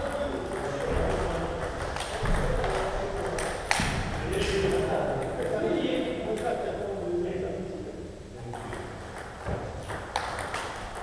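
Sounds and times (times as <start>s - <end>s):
table tennis ball clicking: 8.6s - 11.0s.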